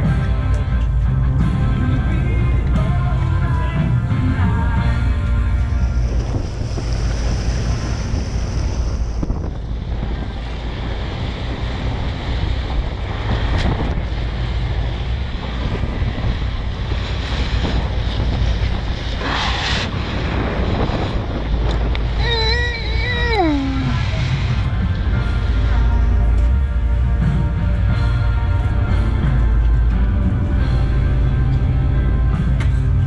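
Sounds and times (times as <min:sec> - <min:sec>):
churning sea water: 0:00.0 - 0:33.0
low rumble: 0:00.0 - 0:33.0
wind buffeting microphone: 0:00.0 - 0:33.0.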